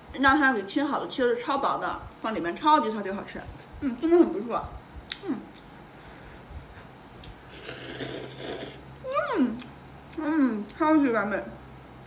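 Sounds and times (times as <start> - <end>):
person slurping noodles: 7.5 - 8.8.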